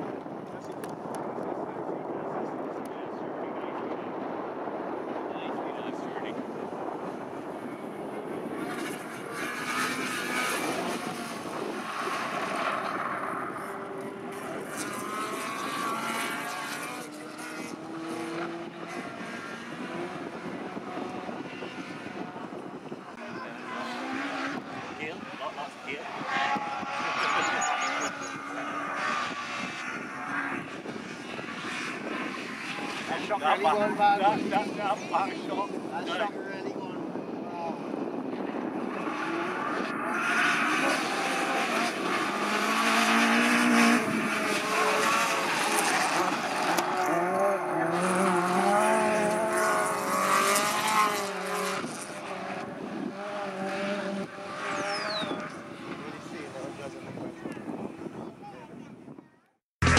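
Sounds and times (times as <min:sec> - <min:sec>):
racing car engines: 0:00.0 - 0:59.2.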